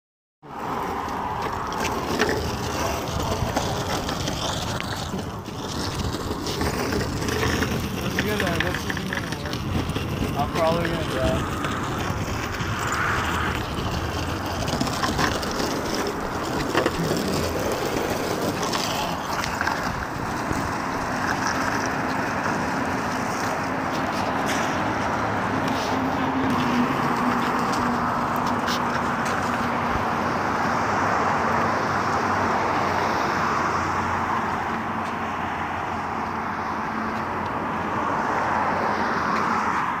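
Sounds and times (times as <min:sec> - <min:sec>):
longboard wheels rolling on concrete: 0:00.4 - 0:40.0.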